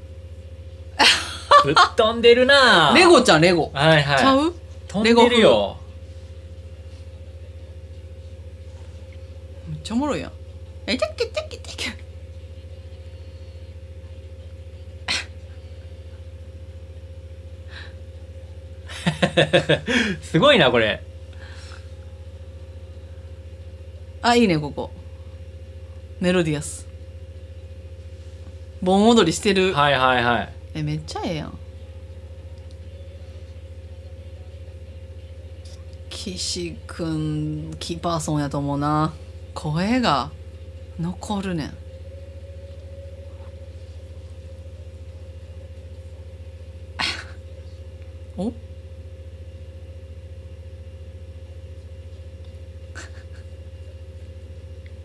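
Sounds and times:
low fluttering hum: 0:00.0 - 0:55.0
person laughing: 0:01.0 - 0:02.0, 0:15.1 - 0:15.3, 0:18.9 - 0:20.3, 0:47.0 - 0:47.4, 0:52.9 - 0:53.6.

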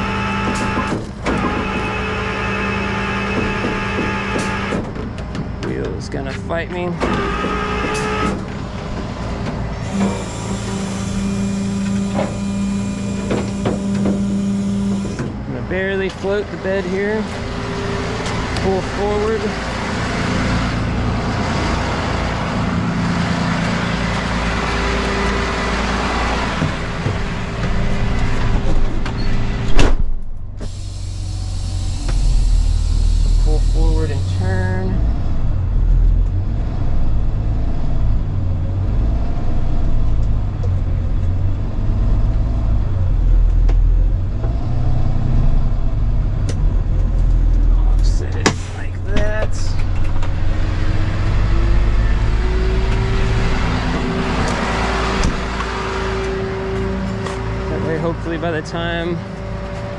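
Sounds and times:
diesel truck engine running: 0:00.0 - 0:59.9
hiss of air: 0:30.6 - 0:34.5.

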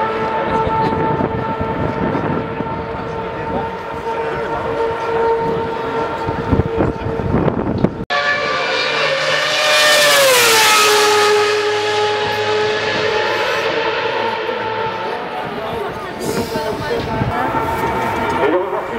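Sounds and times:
racing car engine passing: 0:00.0 - 0:18.9.

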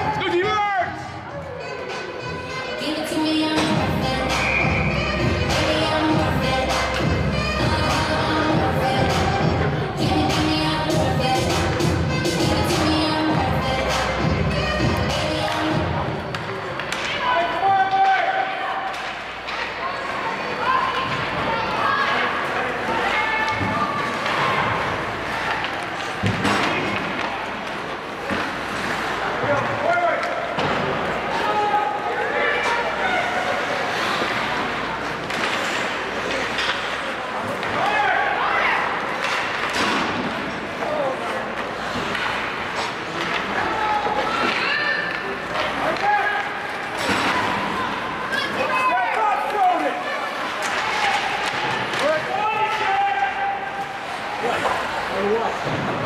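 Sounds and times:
spectators calling out and shouting: 0:00.0 - 0:56.0
puck and sticks knocking on boards: 0:25.6 - 0:27.4.

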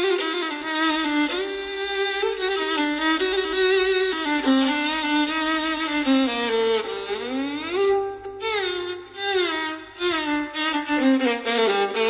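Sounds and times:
solo violin playing: 0:00.0 - 0:12.0.

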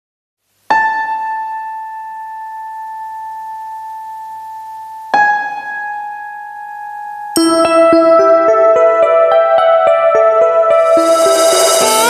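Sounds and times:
keyboard notes: 0:07.4 - 0:12.0
karaoke backing track with beat: 0:10.8 - 0:12.0.

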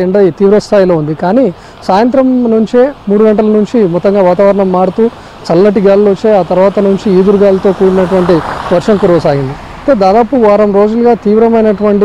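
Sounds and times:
background hiss: 0:00.0 - 0:12.0
person narrating news: 0:00.0 - 0:12.0.

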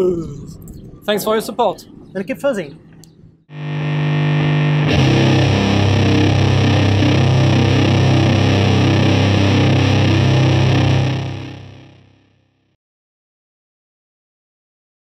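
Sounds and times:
distorted electric guitar chord: 0:03.5 - 0:12.3
rock band playing: 0:03.7 - 0:12.0.

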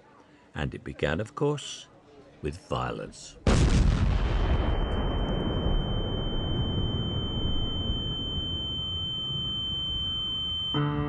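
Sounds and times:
low explosion rumble: 0:03.5 - 0:09.0
high-pitched ringing tone: 0:04.4 - 0:11.0.

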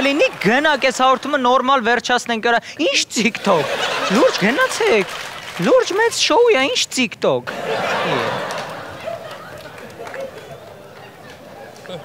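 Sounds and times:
faint murmur of voices: 0:07.5 - 0:12.0.

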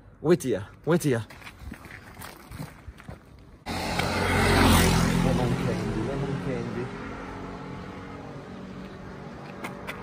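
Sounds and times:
low street background: 0:00.0 - 0:10.0
vehicle engine passing: 0:03.7 - 0:10.0.

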